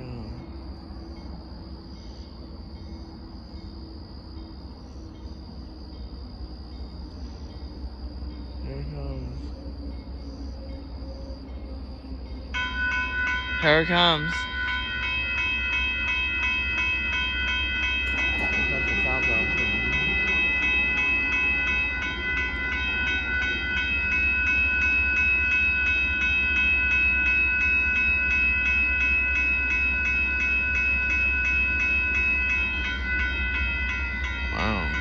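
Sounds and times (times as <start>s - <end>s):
crossing warning bell ringing: 0.0s - 35.0s
low rumble: 18.0s - 24.3s.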